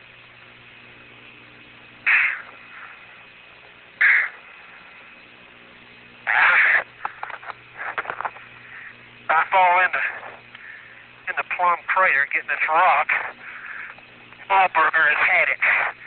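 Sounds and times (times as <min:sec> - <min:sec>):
low electrical hum: 0:00.0 - 0:16.0
heavy breaths over radio: 0:02.1 - 0:03.2, 0:06.3 - 0:11.4, 0:13.1 - 0:16.0
crackling clicks: 0:06.7 - 0:08.6, 0:10.1 - 0:10.7, 0:13.1 - 0:16.0.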